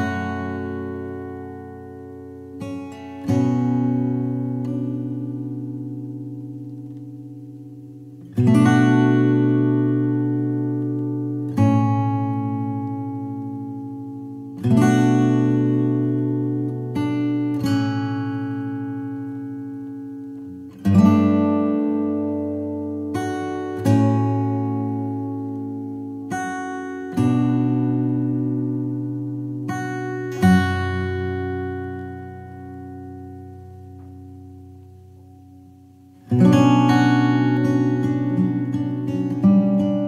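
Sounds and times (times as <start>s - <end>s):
acoustic guitar chords ringing: 0.0s - 40.0s.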